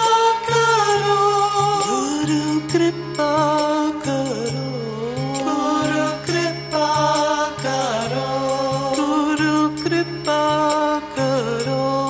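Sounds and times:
person singing long notes: 0.0s - 12.0s
low repeating accompaniment: 1.5s - 12.0s.

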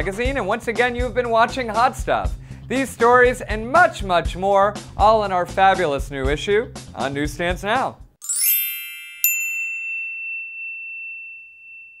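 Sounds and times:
bright ding: 8.2s - 12.0s
shimmering bell-like chimes: 8.2s - 12.0s.

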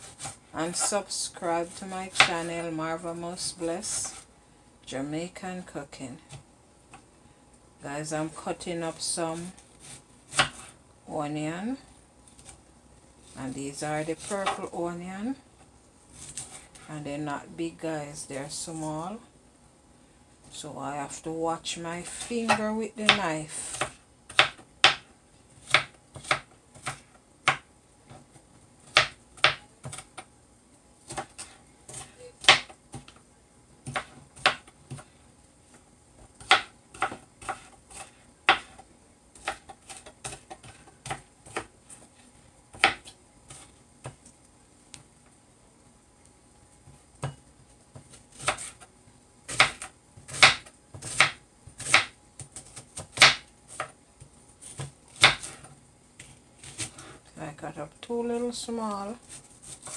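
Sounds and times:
knife chopping on plastic board: 9.8s - 10.7s, 22.4s - 30.3s, 31.0s - 33.2s, 33.8s - 35.1s, 36.2s - 38.8s, 39.4s - 41.7s, 42.7s - 44.2s, 47.2s - 48.9s, 49.5s - 54.0s, 54.6s - 57.1s.

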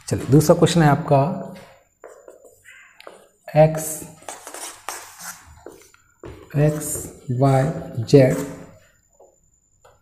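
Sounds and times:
marker scratching on whiteboard: 2.0s - 9.3s.

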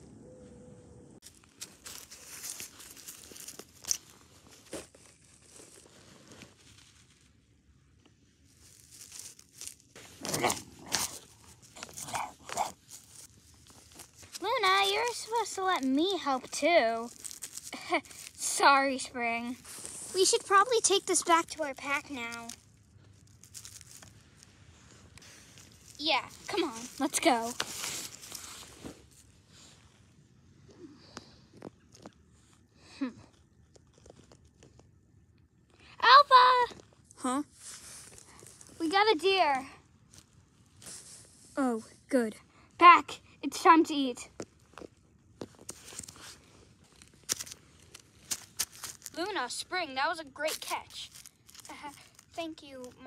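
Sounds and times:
soft rustles: 1.2s - 35.8s, 36.7s - 42.1s, 44.2s - 53.0s
snow crunching: 8.5s - 22.6s, 23.2s - 29.9s.

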